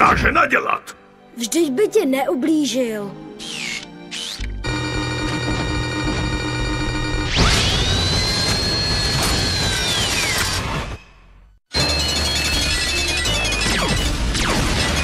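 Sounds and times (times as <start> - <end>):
loud mechanical whirring: 3.4 - 11.0.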